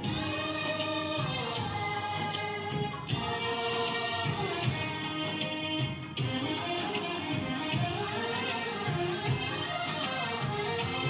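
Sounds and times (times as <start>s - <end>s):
group singing prayer song: 0.0s - 5.7s
musical accompaniment: 0.0s - 11.0s
shaken percussion beat: 0.0s - 11.0s.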